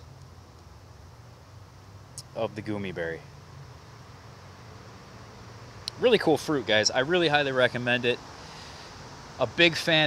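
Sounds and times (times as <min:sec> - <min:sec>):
light hiss: 0:00.0 - 0:10.0.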